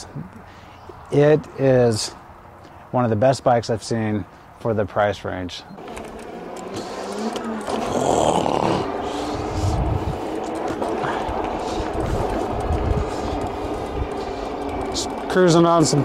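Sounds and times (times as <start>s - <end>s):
electric bike motor whining: 5.8s - 16.0s
wind gusting on microphone: 8.6s - 15.3s.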